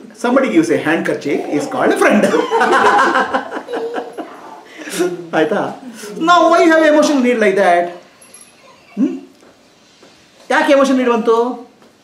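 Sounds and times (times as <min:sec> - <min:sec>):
short rising vocal sound: 0:04.2 - 0:05.0.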